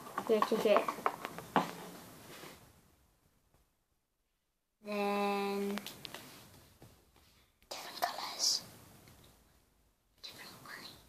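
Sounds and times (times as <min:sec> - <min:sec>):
person whispering: 0:07.7 - 0:08.7, 0:10.2 - 0:11.0.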